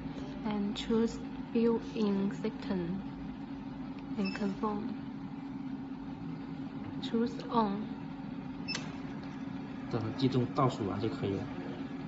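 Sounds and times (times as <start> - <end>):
inkjet printer humming: 0.0 - 12.0.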